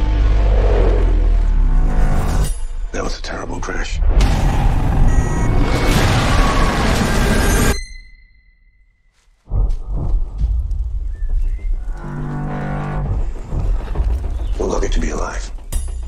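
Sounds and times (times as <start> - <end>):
low rumbling music: 0.0 - 3.2, 9.4 - 16.0.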